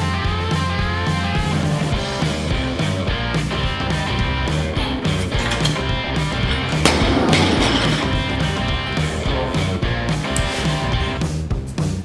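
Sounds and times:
rock music with electric guitar: 0.0s - 12.0s
barbell dropped on floor: 6.4s - 8.7s.

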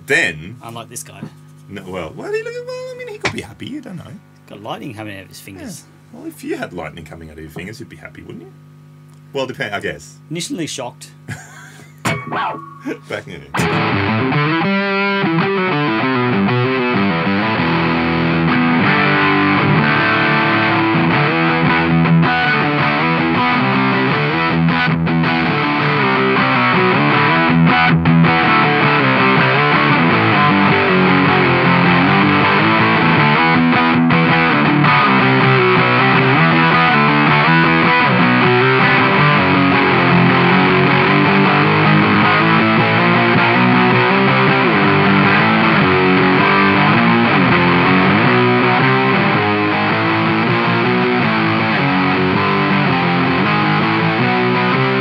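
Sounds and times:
distorted electric guitar: 12.0s - 55.0s.

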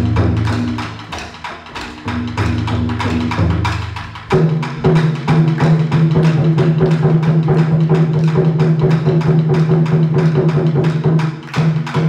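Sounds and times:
taiko drums: 0.0s - 12.0s.

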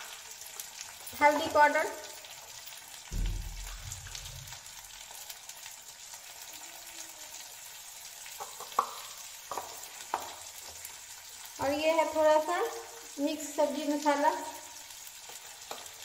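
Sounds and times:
vegetables sizzling in oil: 0.0s - 16.0s
low rumble: 3.1s - 4.6s.

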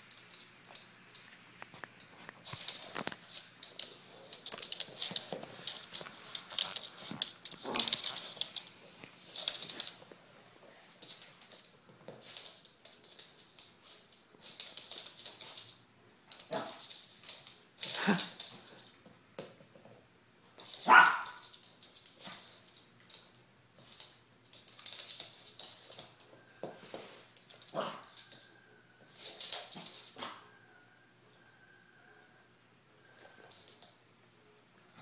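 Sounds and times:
small dog yapping: 20.8s - 21.4s, 27.7s - 28.1s.

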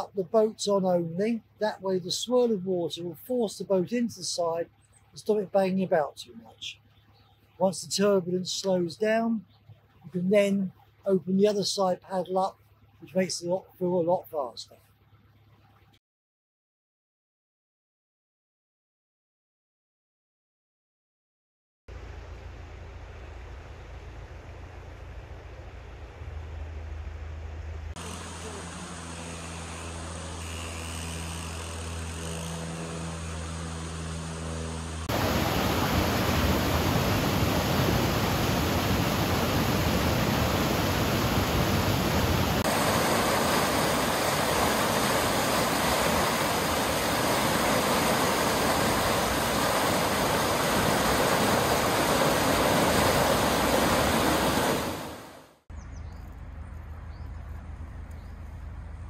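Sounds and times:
low steady hum: 21.9s - 54.8s
water rushing: 35.0s - 55.6s.

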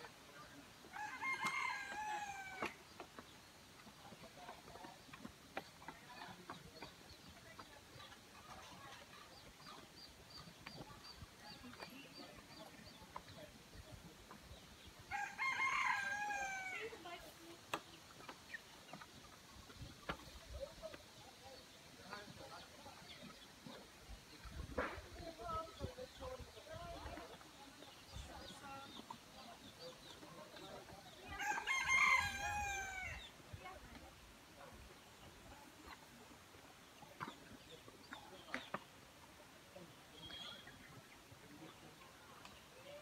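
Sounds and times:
rooster crowing: 15.1s - 16.8s.

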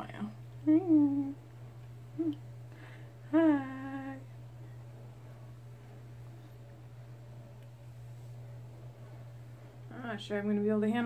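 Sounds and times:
steady low hum: 0.0s - 11.0s
woman humming: 0.6s - 4.4s.

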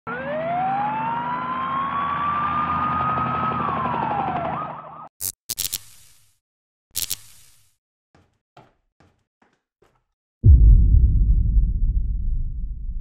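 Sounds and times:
emergency siren wailing: 0.0s - 5.1s.

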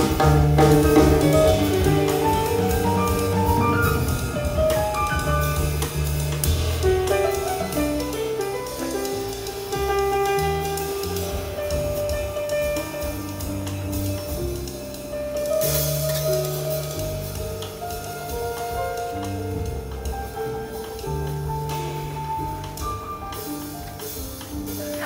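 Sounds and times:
drum kit: 0.0s - 25.0s
piano: 0.0s - 25.0s
upright bass: 0.0s - 25.0s.

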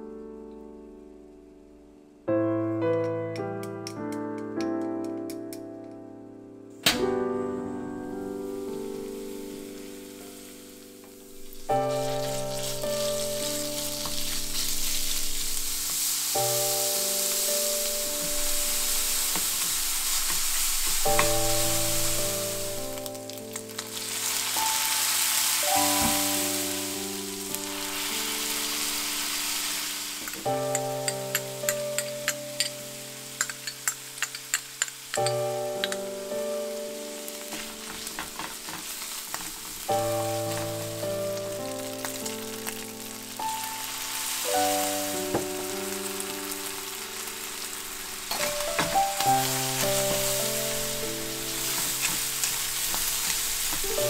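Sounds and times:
background music with slow chords: 0.0s - 54.0s
meat sizzling in a frying pan: 8.2s - 54.0s.

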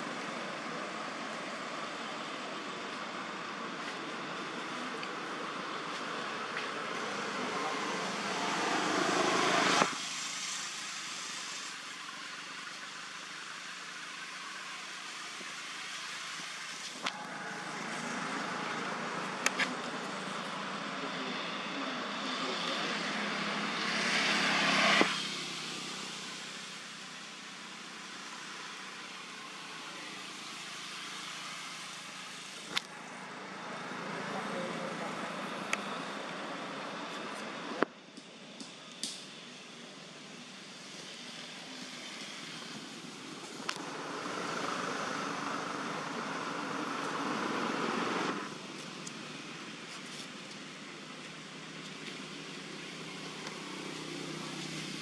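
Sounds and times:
outdoor background noise: 0.0s - 55.0s.

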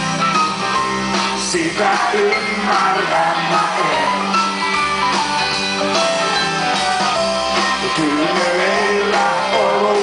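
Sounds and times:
bass: 0.0s - 10.0s
drums: 0.0s - 10.0s
electric guitars: 0.0s - 10.0s
keyboard: 0.0s - 10.0s.

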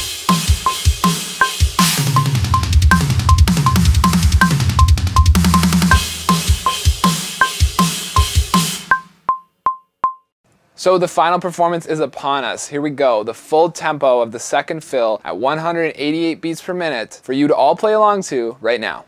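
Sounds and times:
kick drum: 0.0s - 8.7s
snare drum: 0.0s - 9.2s
metronome click: 8.2s - 10.3s.

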